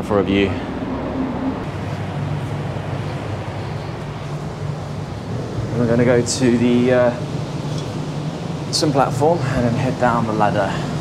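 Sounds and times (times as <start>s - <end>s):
constant rushing noise: 0.0s - 11.0s
ship engines humming: 0.0s - 11.0s.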